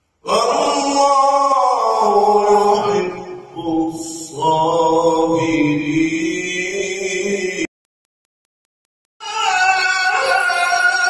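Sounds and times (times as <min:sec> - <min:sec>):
man chanting melodically: 0:00.3 - 0:07.7.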